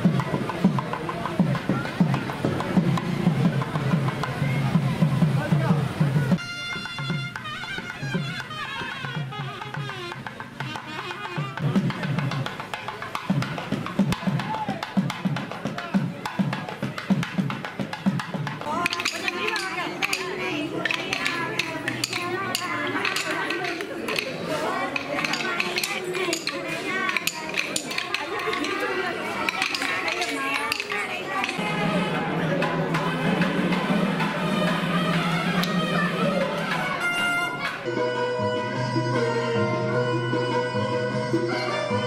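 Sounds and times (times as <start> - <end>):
procession music with drum beats: 0.0 - 37.6
wooden sticks clicking: 18.5 - 31.6.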